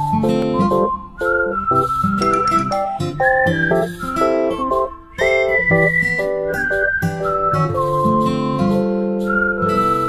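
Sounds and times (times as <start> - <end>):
plucked acoustic guitar chords: 0.0 - 10.0
whistled melody: 0.0 - 10.0.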